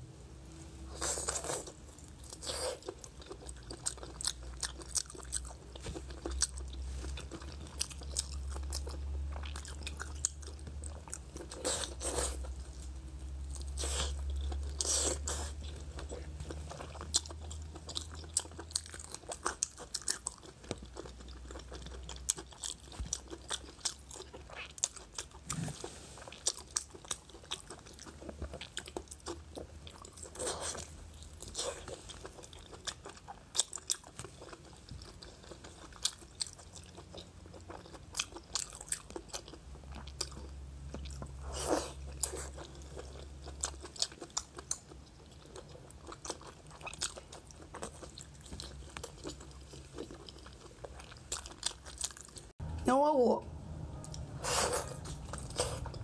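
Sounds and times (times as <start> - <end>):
chewing with mouth smacks: 0.9 - 52.6, 54.0 - 56.0.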